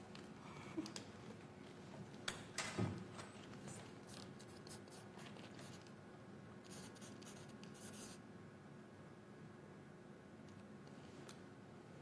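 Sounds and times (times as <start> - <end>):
pen scratching on paper: 6.7 - 8.2.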